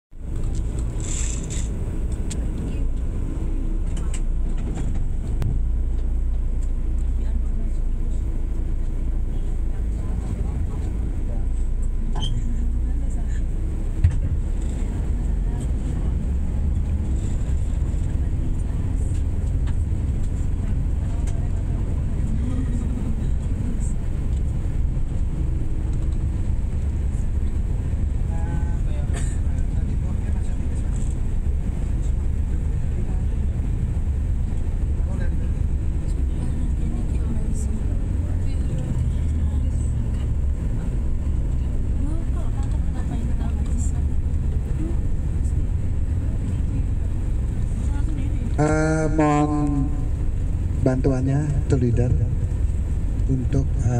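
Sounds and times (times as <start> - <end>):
bus engine and tyres rumbling: 0.0 - 53.9.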